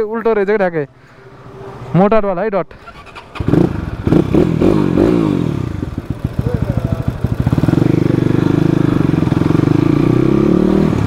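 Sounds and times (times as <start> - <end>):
dirt bike engine revving and idling: 3.4 - 11.0.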